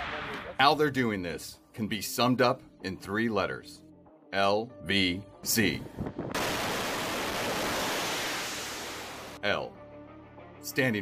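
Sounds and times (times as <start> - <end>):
jet engine roar: 6.4 - 9.4.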